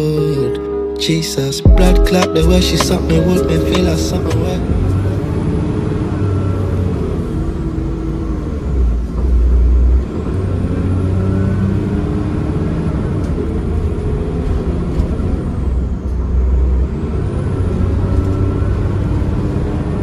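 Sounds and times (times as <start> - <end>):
bus engine running: 2.4 - 20.0.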